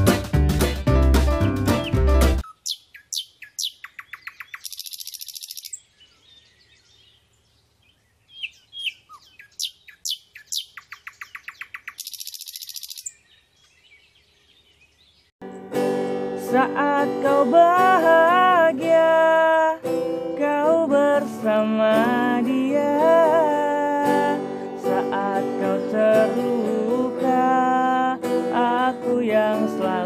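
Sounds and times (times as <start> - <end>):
music: 0.0 - 2.4, 15.4 - 30.0
birds chirping and trilling: 1.7 - 15.7
high buzzing bird trill: 2.4 - 7.1, 8.3 - 13.5.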